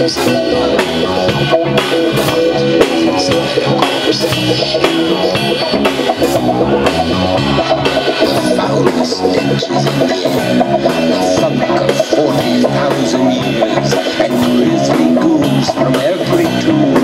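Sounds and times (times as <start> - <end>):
drum kit with cymbals: 0.0 - 17.0
guitar: 0.0 - 17.0.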